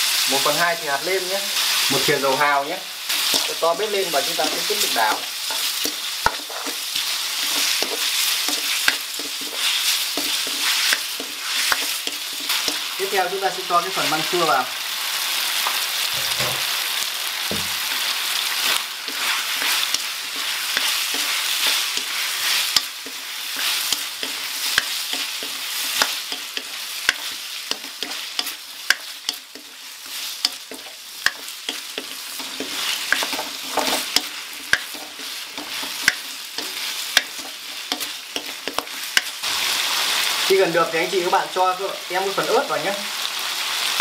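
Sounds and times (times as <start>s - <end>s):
food sizzling in a wok: 0.0s - 44.0s
wooden spatula scraping pan: 30.7s - 37.7s.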